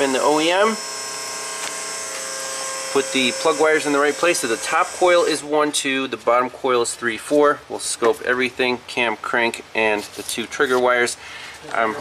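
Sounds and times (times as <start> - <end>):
high-pitched buzzing hum: 0.0 - 5.7.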